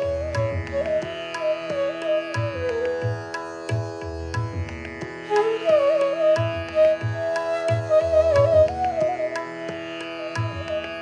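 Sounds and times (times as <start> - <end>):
bamboo flute melody: 0.0 - 3.8, 5.2 - 11.0
tabla drumming: 0.0 - 11.0.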